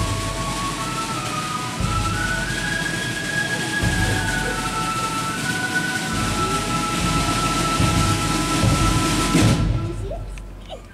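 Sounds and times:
marching band playing slow tune: 0:00.0 - 0:10.7.

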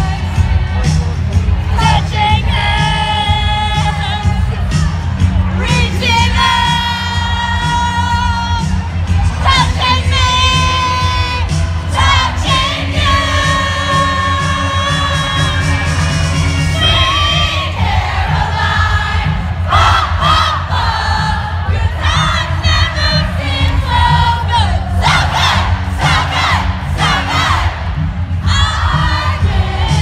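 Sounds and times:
amplified music with heavy bass: 0:00.0 - 0:30.0
crowd singing and screaming: 0:00.0 - 0:30.0.

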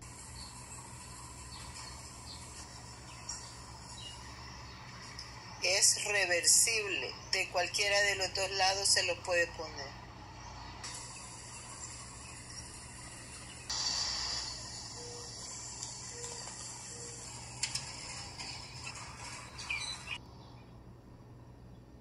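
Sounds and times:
faint insect chirps: 0:10.9 - 0:18.2.

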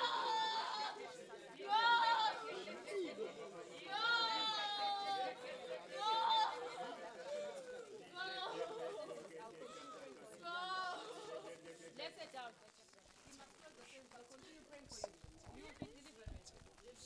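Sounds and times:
low murmuring voices: 0:00.0 - 0:17.0.

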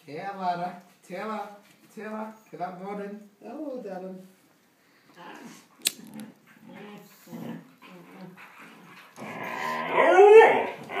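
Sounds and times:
dogs growling: 0:05.2 - 0:11.0
dog howling: 0:09.2 - 0:11.0.

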